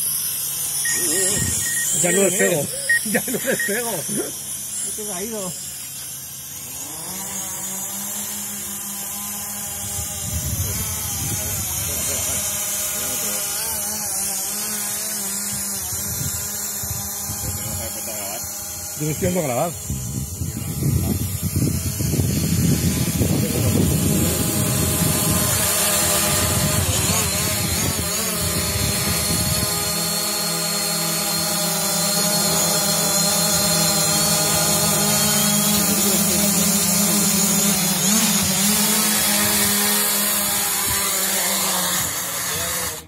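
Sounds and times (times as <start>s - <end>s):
drone propellers buzzing: 0.0s - 43.0s.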